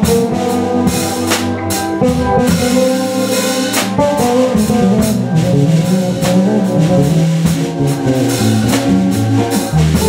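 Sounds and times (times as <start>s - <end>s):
blues band playing: 0.0s - 10.0s.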